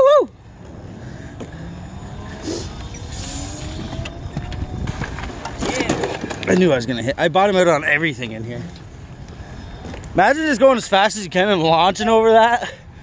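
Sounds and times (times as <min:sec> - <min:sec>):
electric motor whine: 0:01.4 - 0:05.5
wind rushing: 0:01.6 - 0:06.5.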